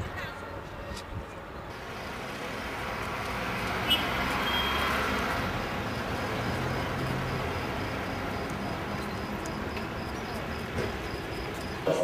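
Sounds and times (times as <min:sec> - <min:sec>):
road traffic: 0:00.4 - 0:12.0
vehicle passing: 0:01.7 - 0:11.8.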